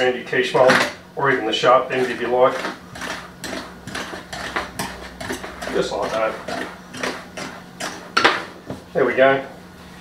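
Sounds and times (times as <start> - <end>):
knife scraping metal tin edge: 1.9 - 8.3.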